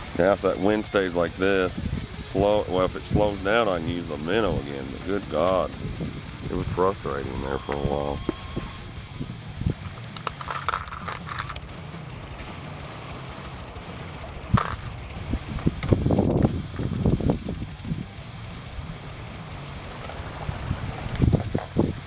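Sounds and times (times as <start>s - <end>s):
low wind rumble: 0.0s - 22.0s
plastic clicks and rattles: 9.8s - 11.7s, 14.5s - 14.9s.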